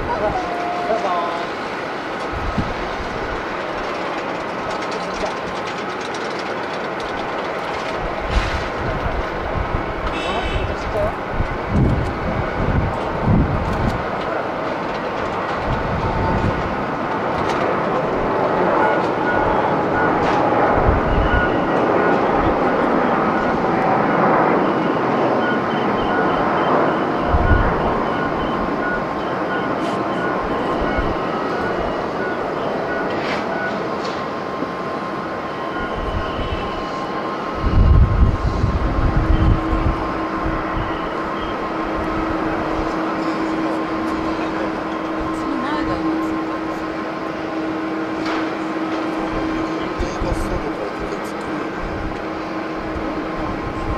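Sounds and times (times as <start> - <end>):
jet engines roaring: 0.0 - 53.9
wind rumbling on microphone: 1.4 - 29.2, 35.8 - 47.2, 51.7 - 53.9.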